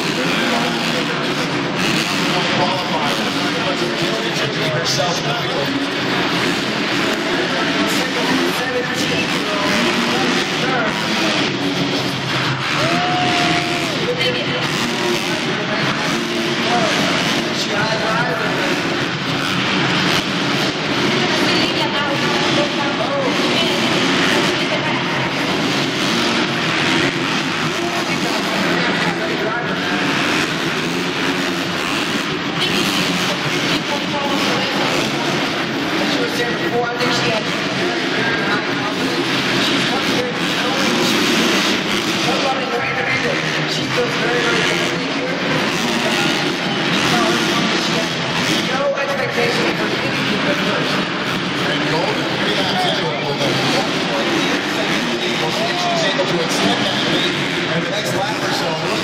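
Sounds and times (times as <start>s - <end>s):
crowd noise: 0.0s - 59.0s
motocross engines revving: 0.0s - 59.0s.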